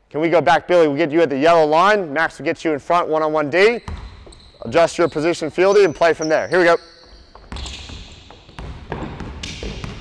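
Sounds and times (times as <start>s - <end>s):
basketball bouncing on hardwood floor: 3.8s - 4.5s, 7.0s - 10.0s.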